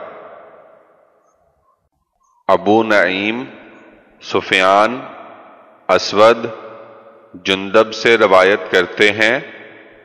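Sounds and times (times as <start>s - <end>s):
man narrating with echo: 2.5s - 9.7s.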